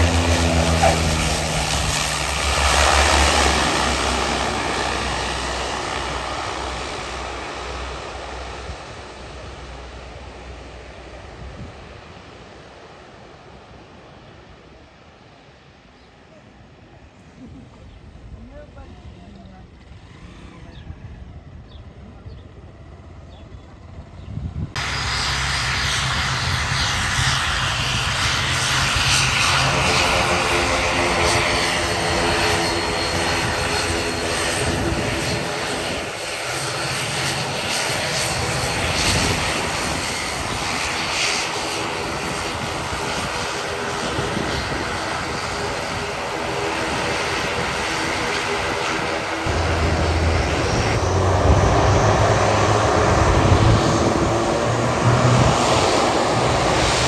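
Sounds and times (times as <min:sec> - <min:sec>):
turboprop propeller drone: 0:00.0 - 0:14.2, 0:17.1 - 0:57.0.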